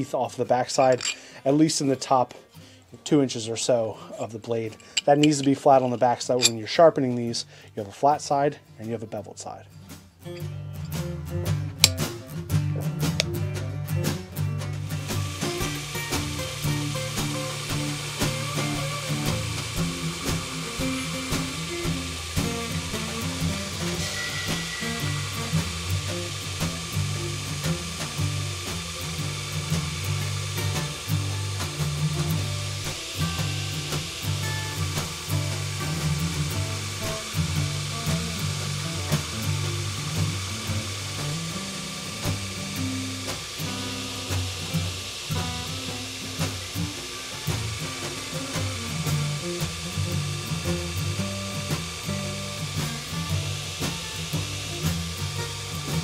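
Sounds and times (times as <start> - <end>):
belt grinder grinding steel: 0.7 - 1.4, 4.7 - 6.8, 11.8 - 12.0, 14.6 - 56.0
background music with bass line: 9.8 - 56.0.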